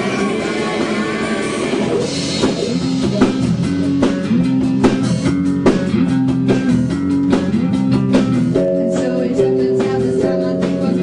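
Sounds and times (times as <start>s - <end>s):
drum kit beat: 0.0s - 11.0s
electric guitar riffing: 0.0s - 11.0s
electric bass riffing: 1.9s - 11.0s.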